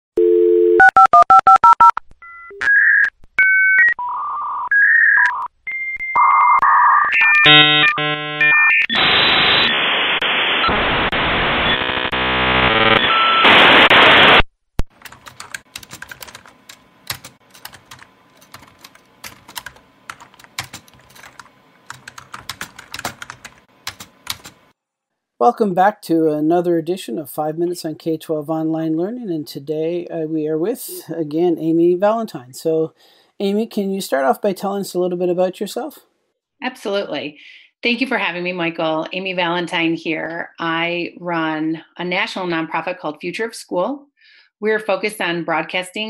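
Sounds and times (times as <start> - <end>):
telephone dial tone: 0.2 - 1.9
touch-tone dialling beeps: 0.2 - 8.9
dial-up modem screech: 2.6 - 14.4
computer keyboard typing: 14.9 - 24.6.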